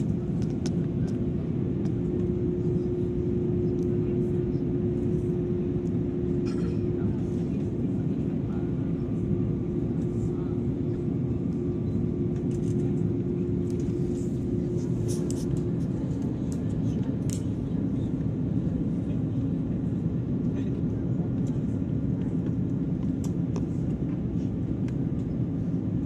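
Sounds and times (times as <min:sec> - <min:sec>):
airliner cabin drone: 0:00.0 - 0:26.0.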